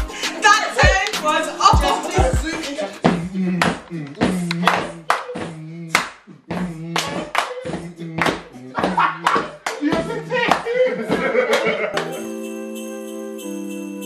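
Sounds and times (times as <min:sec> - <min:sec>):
music with steady beat: 0:00.0 - 0:05.6
voices: 0:00.4 - 0:11.9
people clapping: 0:04.5 - 0:06.2, 0:06.9 - 0:12.2.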